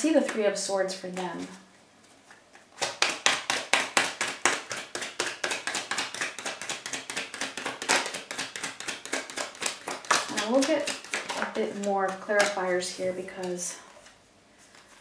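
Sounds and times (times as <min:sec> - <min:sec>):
cards being shuffled: 0:01.0 - 0:15.0.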